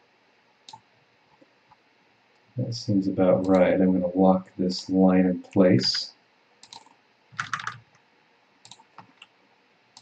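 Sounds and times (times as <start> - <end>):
computer keyboard and mouse clicks: 6.6 - 8.0, 8.6 - 9.3.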